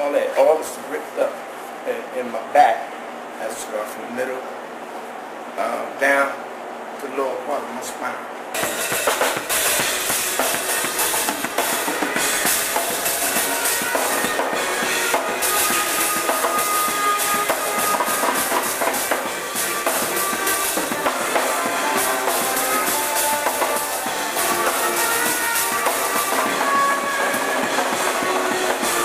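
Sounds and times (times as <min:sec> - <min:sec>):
drum kit beat: 0:08.6 - 0:29.0
live band music: 0:08.6 - 0:29.0.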